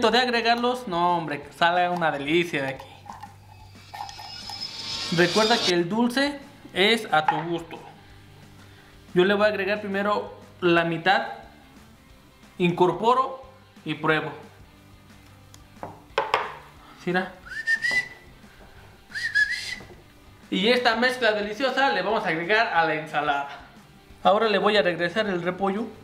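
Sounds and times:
spatula scraping metal can: 3.0 - 5.7
knocks from kitchen handling: 15.8 - 16.6
tin can set down on stone: 15.8 - 16.6.

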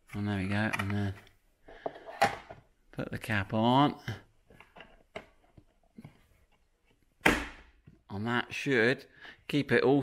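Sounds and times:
cap snapping shut: 7.2 - 7.7.

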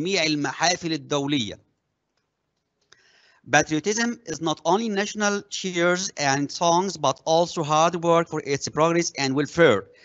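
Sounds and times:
speech: 0.0 - 1.6, 3.5 - 9.9.

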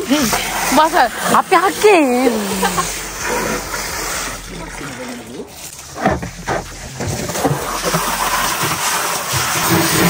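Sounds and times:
water from hose splashing into bucket: 0.0 - 10.0.

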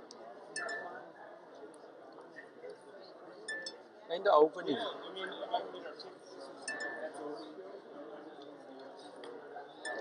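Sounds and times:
murmur of distant voices: 0.0 - 10.0
glassy clinks: 0.6 - 1.0, 3.5 - 3.8, 6.7 - 7.1.

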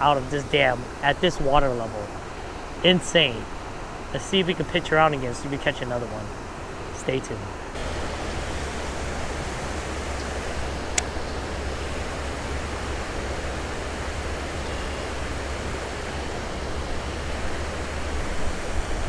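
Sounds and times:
water rushing over dam spillway: 0.0 - 19.0.

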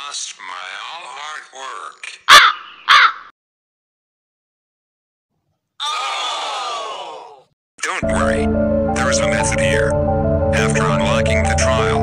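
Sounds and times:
man's wavering wordless vocals: 7.8 - 12.0.

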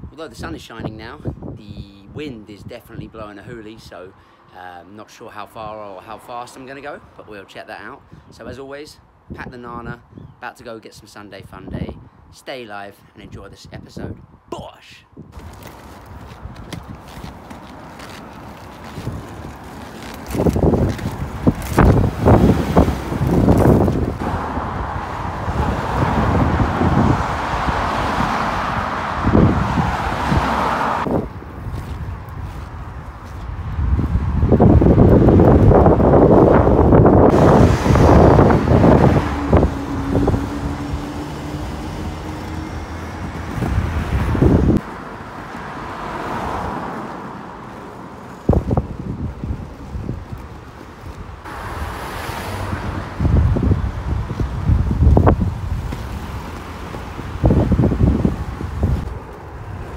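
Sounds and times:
wind gusts on microphone: 0.0 - 4.1, 11.2 - 12.4, 13.1 - 59.9
skateboard rolling over asphalt: 15.4 - 24.4.

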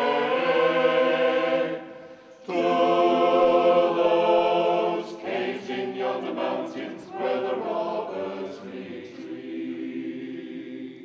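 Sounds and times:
mixed choir singing unaccompanied: 0.0 - 11.0.

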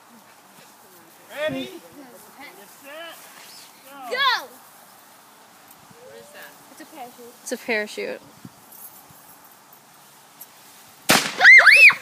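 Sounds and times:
firework bang: 11.1 - 11.7
firework shrieks: 11.1 - 12.0.

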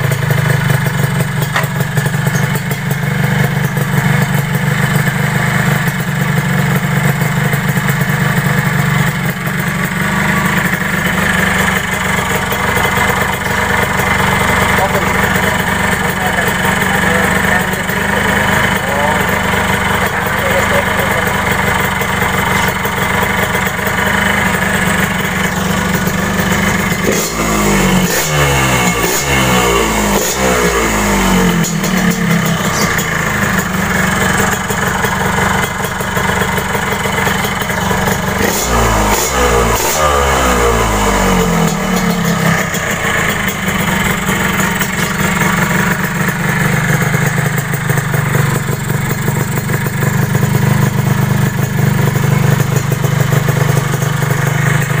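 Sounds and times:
motorcycle engine idling and revving: 0.0 - 55.0.

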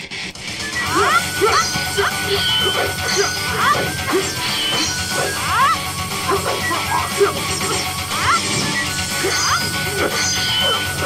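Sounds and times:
swords clashing: 6.3 - 10.9.

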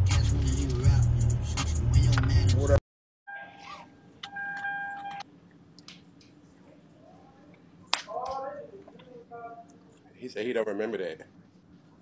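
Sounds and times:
steady electronic tone: 3.3 - 5.2.

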